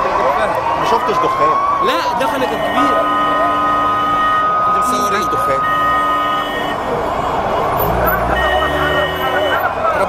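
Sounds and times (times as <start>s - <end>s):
vehicle horn: 2.5s - 9.7s
heavy vehicle engine rumble: 5.4s - 10.0s.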